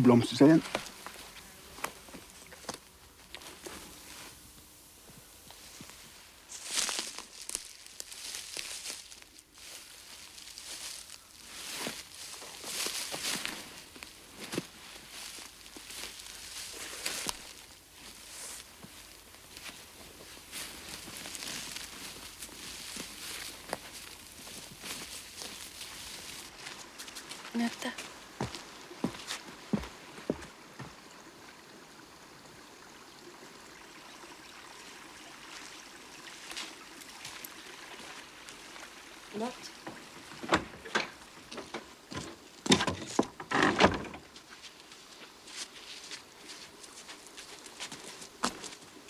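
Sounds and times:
rustling and crackling: 0.4s - 28.1s.

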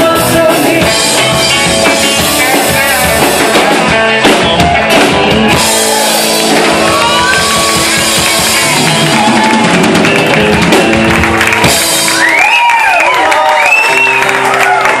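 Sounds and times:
acoustic and electric guitars: 0.0s - 15.0s
drum kit: 0.0s - 15.0s.

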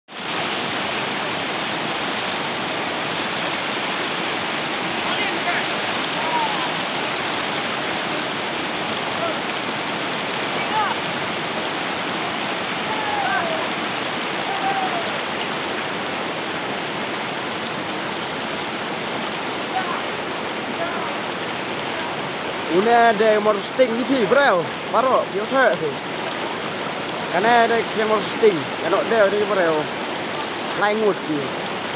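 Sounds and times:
rushing flowing water: 0.1s - 31.9s.

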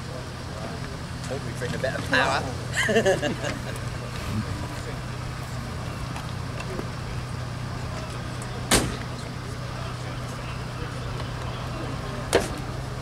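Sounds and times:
car engine idling: 0.0s - 13.0s
sharp thump: 8.7s - 9.0s.

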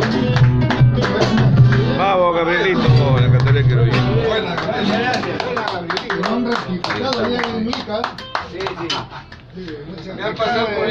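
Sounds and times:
small group clapping: 0.0s - 2.1s, 3.0s - 10.2s
men talking and calling out: 0.9s - 10.9s.

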